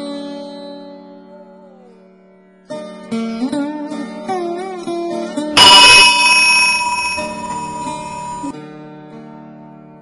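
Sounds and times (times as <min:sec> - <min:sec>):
temple bell ringing: 0:05.6 - 0:08.5.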